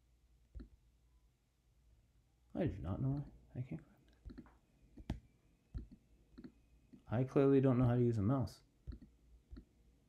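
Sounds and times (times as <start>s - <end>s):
faint computer mouse clicks: 4.1s - 5.2s, 8.9s - 9.7s.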